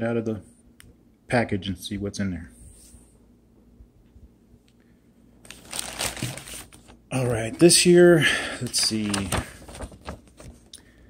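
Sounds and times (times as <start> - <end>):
plastic mailer bag crinkling: 5.4 - 10.7.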